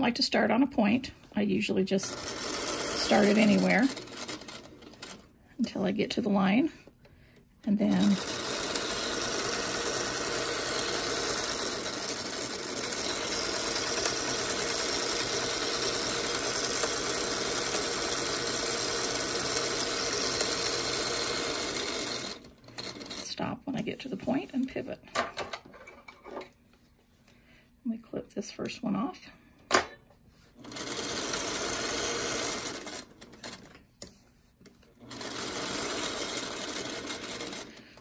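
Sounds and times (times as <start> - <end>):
sewing machine running: 1.9 - 5.3, 7.8 - 23.3, 30.6 - 33.8, 35.0 - 38.0.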